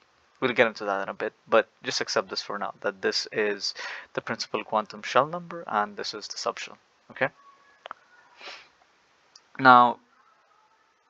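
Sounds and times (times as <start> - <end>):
soft breathy hiss: 0.0 - 11.0
short sniff: 3.8 - 4.1, 8.3 - 8.8.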